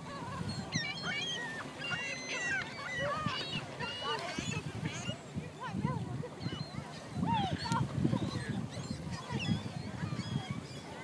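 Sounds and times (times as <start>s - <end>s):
gulls calling: 0.0s - 11.0s
lake water washing on shore: 0.0s - 11.0s.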